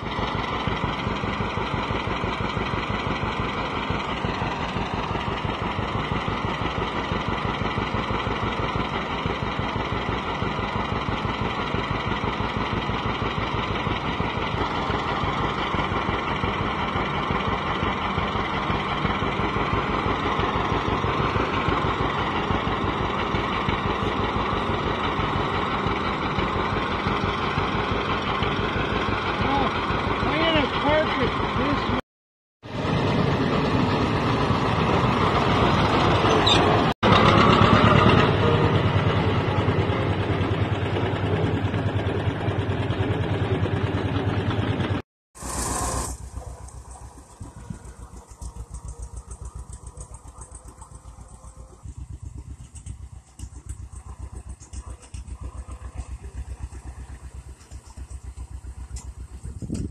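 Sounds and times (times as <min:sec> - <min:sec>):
tractor engine idling: 0:00.0 - 0:32.0, 0:32.6 - 0:59.9.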